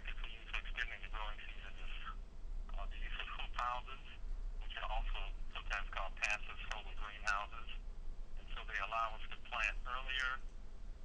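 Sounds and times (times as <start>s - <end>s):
person talking over telephone: 0.0s - 7.8s, 8.4s - 10.4s
steady low hum: 0.0s - 11.0s.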